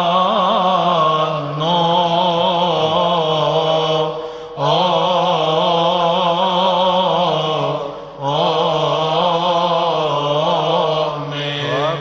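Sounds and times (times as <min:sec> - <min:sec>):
men chanting a held note: 0:07.4 - 0:12.0.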